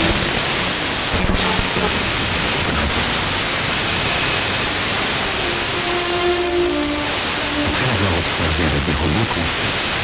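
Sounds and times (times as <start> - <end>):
radio hiss and static: 0.0 - 10.0
faint musical tones: 3.8 - 9.4.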